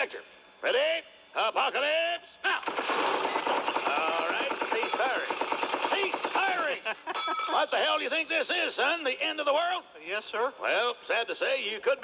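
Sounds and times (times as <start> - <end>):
voices: 0.0 - 12.0
rapid machine-gun fire: 2.6 - 6.8.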